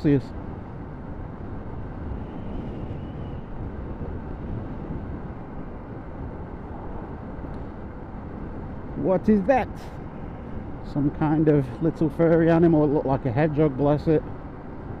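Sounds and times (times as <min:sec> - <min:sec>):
motorcycle road noise rumble: 0:00.0 - 0:15.0
wind rush: 0:00.0 - 0:15.0.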